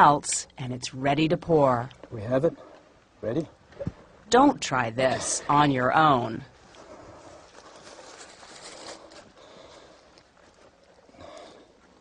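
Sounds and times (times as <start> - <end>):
low background noise: 0.0 - 12.0
men breathing and sniffing: 6.6 - 12.0.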